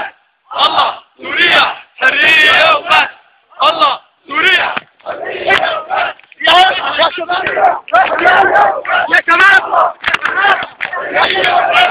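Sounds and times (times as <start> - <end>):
crowd chanting slogans: 0.0 - 11.9.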